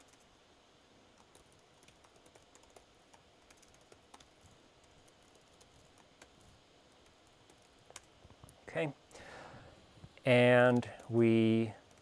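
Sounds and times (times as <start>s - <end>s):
faint keyboard typing: 0.0s - 0.4s, 1.1s - 9.2s, 10.0s - 12.0s.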